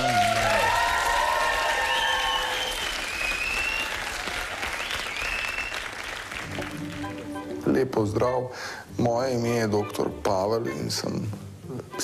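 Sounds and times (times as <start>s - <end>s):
audience applauding: 0.0s - 7.5s.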